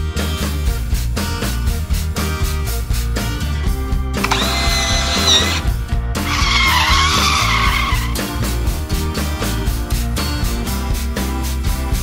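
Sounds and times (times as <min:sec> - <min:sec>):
high squealing tone: 0:04.3 - 0:05.7, 0:06.3 - 0:08.2
rough wavering screech: 0:04.3 - 0:08.2.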